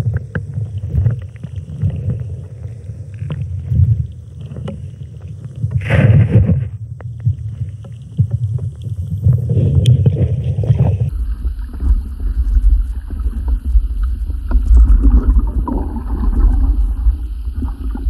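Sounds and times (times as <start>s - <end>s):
muffled underwater rumble and sloshing: 0.0s - 18.0s.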